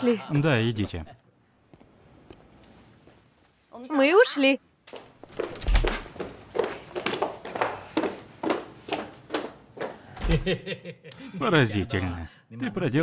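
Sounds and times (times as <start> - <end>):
footsteps on a hard floor: 4.9 - 10.1.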